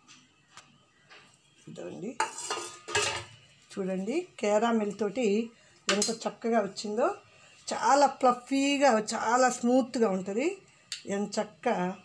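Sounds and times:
woman speaking: 0:01.7 - 0:02.2, 0:03.7 - 0:12.0.

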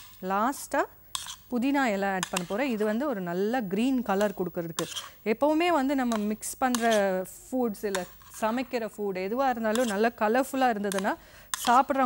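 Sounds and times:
woman speaking: 0:01.5 - 0:12.0.

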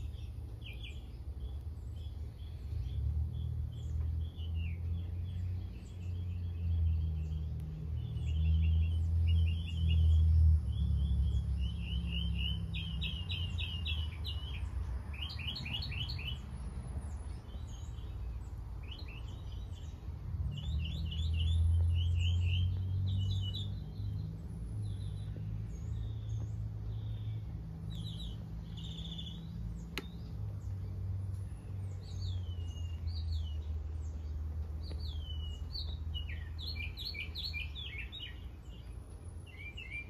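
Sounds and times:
small birds chirping: 0:00.0 - 0:40.0.

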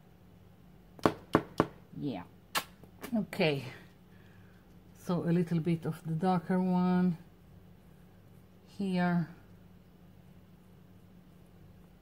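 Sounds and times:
hard object tapping: 0:01.0 - 0:01.8.

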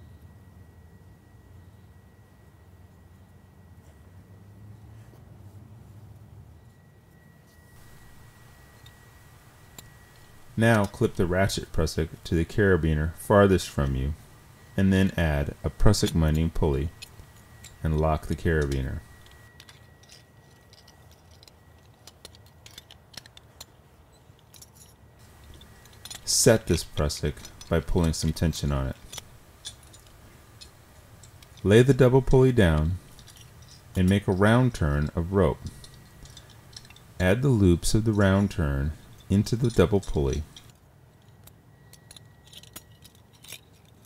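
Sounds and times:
metallic clicks of carabiners: 0:07.1 - 0:44.0.

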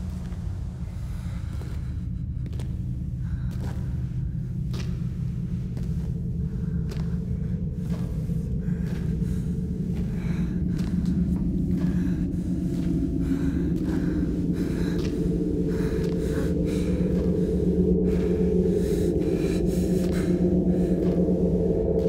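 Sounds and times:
low rumbling drone: 0:00.0 - 0:22.0.

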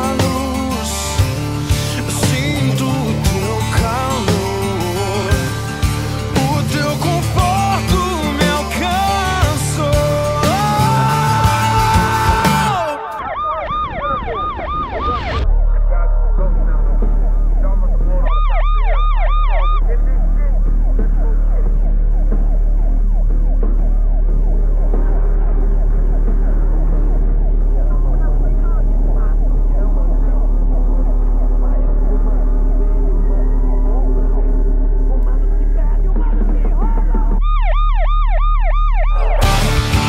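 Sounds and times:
sirens wailing: 0:03.2 - 0:40.0
steady low hum: 0:15.4 - 0:39.0.

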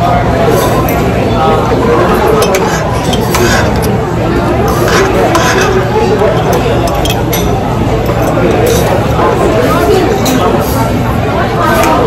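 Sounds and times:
murmur of voices: 0:00.0 - 0:12.0
cutlery clinking on metal pan: 0:02.3 - 0:04.0, 0:04.7 - 0:05.9.

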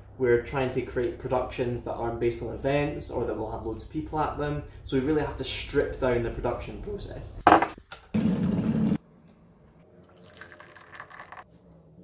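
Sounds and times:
water pouring into mug: 0:10.0 - 0:11.5.

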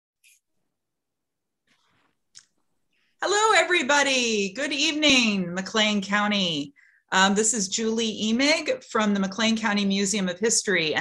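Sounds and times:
woman speaking: 0:03.2 - 0:11.0.

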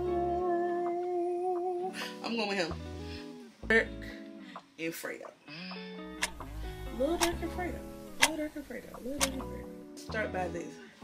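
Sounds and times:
music bass beat: 0:06.2 - 0:10.5.

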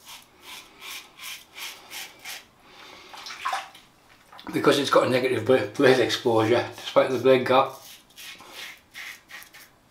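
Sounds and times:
razor scraping stubble: 0:00.0 - 0:02.4, 0:07.6 - 0:09.7.

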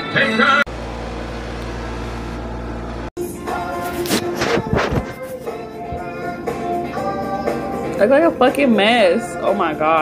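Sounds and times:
machine hum with strong bass: 0:00.7 - 0:05.8.

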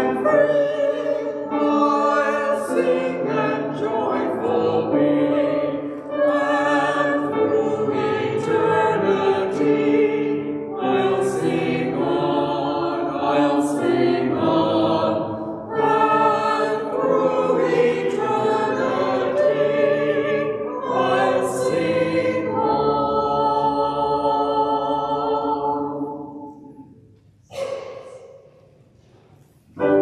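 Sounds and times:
choir singing held notes: 0:00.0 - 0:30.0.

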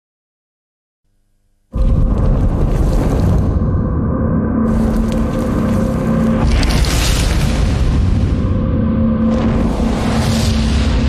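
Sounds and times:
low music drone: 0:01.7 - 0:11.0
deep boom and flame rush: 0:01.8 - 0:11.0.

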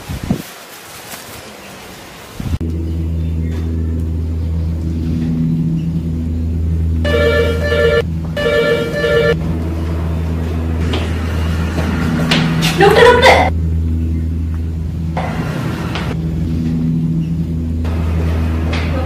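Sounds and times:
low humming drone: 0:02.4 - 0:19.0
ringing electronic tones: 0:07.0 - 0:09.4.

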